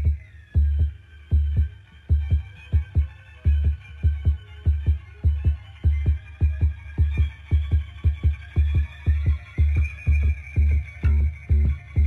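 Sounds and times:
faint musical drone: 0.0 - 12.0
heartbeat thumps: 0.0 - 12.0.

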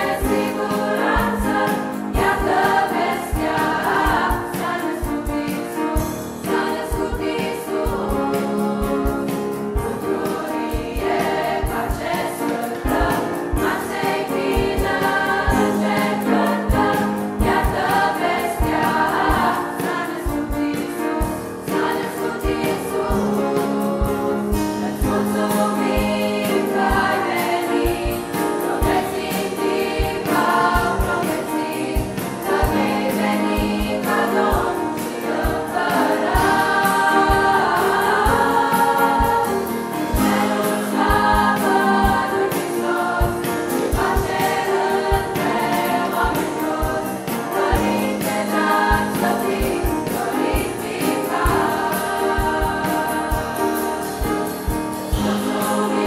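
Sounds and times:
choir singing a carol: 0.0 - 56.0.

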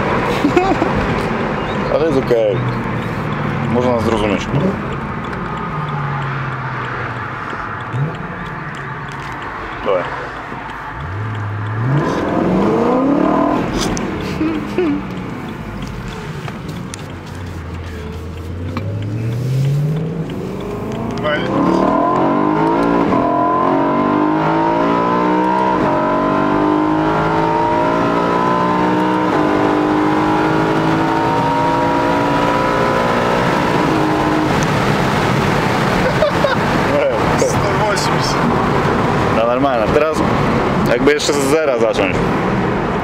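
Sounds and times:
car engine accelerating hard: 0.0 - 43.0.

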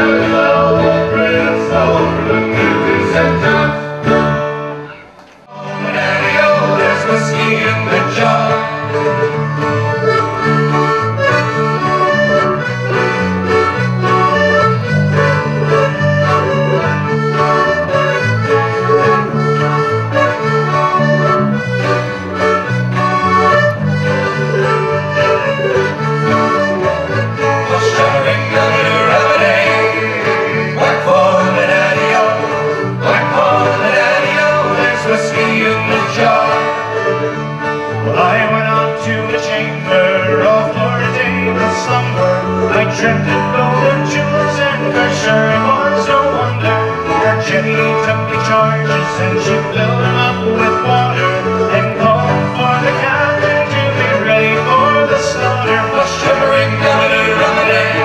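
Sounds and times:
folk band playing: 0.0 - 58.0.

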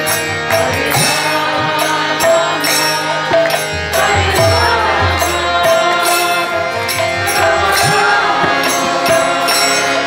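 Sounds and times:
devotional chanting: 0.0 - 10.0
sharp percussion strikes: 0.0 - 10.0
sustained instrument tones: 0.0 - 10.0.

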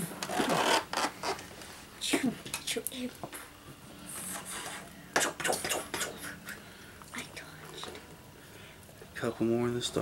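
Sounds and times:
people making mouth hissing sounds: 4.1 - 6.6.

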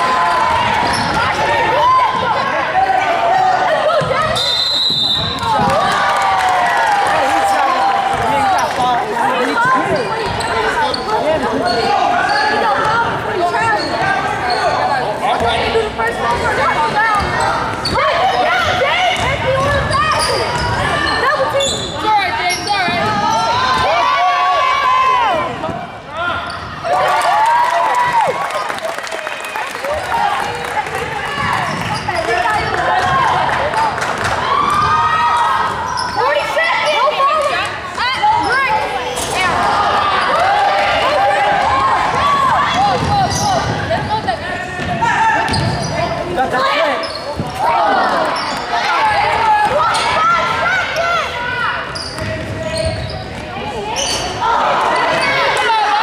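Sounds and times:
spectators talking and calling out: 0.0 - 56.0
sneakers squeaking: 0.1 - 2.4, 3.8 - 5.8, 8.1 - 23.9, 25.5 - 26.9, 31.3 - 33.2, 34.6 - 37.2, 38.0 - 55.6.

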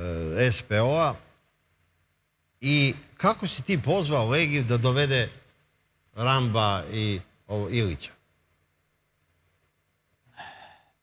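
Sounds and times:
person sighing: 10.4 - 11.0.

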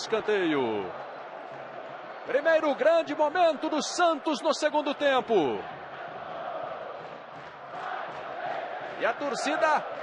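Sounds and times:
stadium crowd chanting: 5.2 - 10.0.

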